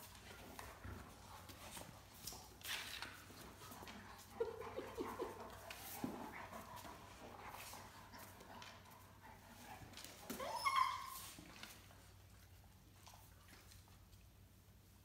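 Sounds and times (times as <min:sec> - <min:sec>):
paws scuffling on tile floor: 0:00.0 - 0:15.0
dog whining: 0:10.2 - 0:11.4
puppy yelping: 0:10.3 - 0:11.4.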